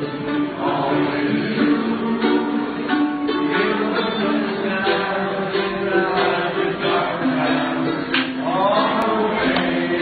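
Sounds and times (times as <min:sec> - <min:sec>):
acoustic strings strumming: 0:00.0 - 0:10.0
voices singing together: 0:00.0 - 0:10.0.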